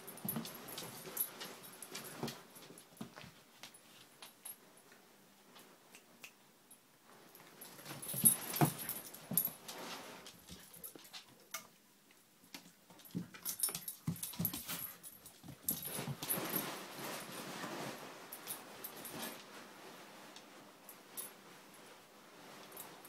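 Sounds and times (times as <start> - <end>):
puppies scuffling: 0.0 - 4.3, 7.4 - 11.5, 12.5 - 20.6.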